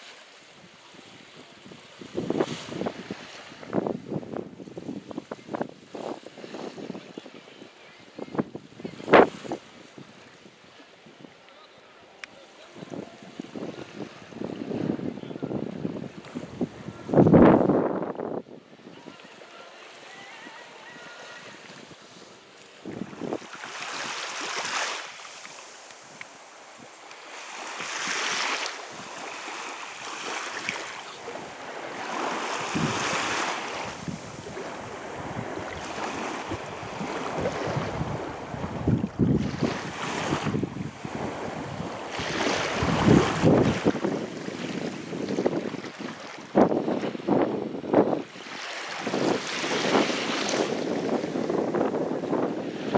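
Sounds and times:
sea surf: 0.0s - 52.9s
small waves on shore: 0.0s - 52.9s
strong wind on microphone: 1.6s - 10.3s, 12.8s - 19.1s, 22.8s - 24.2s, 31.3s - 52.9s.

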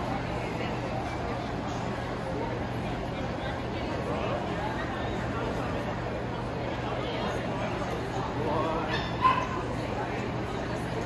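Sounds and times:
dog yipping: 8.9s - 9.6s.

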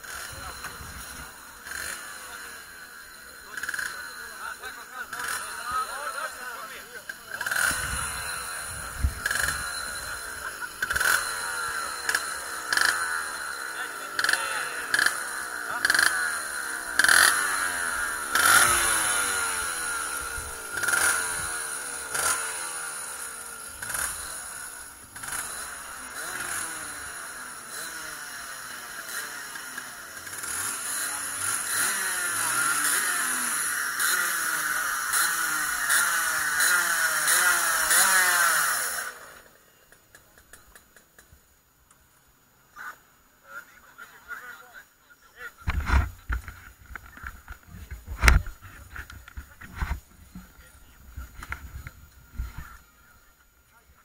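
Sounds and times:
kart engines revving: 0.0s - 41.5s, 45.6s - 53.3s.

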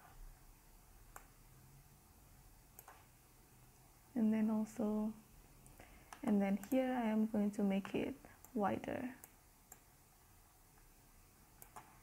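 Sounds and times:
computer mouse clicks: 1.1s - 1.4s, 2.7s - 3.1s, 5.6s - 6.9s, 9.2s - 9.9s, 11.6s - 12.0s.

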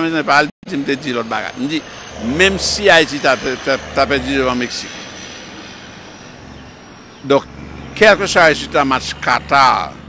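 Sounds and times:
truck engine and tyre rush: 0.7s - 10.0s.

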